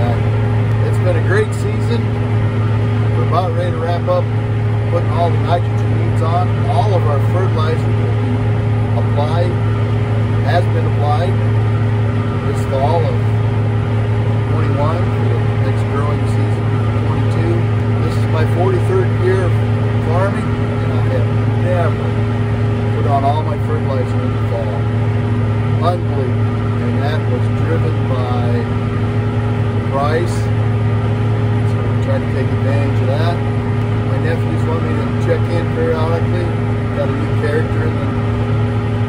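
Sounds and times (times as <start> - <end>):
man talking: 0.0 - 2.2, 3.1 - 8.1, 8.9 - 9.7, 10.4 - 11.5, 12.4 - 13.4, 14.4 - 22.2, 22.9 - 24.9, 25.8 - 28.8, 29.8 - 30.6, 31.6 - 38.2
tractor engine droning: 0.0 - 39.0.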